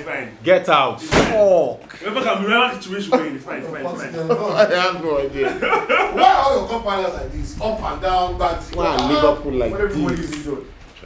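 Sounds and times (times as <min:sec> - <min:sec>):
sharp slam: 0:01.0 - 0:01.5
men shouting excitedly: 0:04.0 - 0:07.2.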